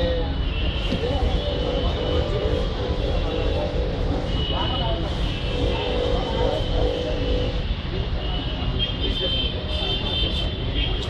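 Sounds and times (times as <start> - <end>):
distant voices: 0.0 - 8.3
road traffic rumble: 0.0 - 11.0.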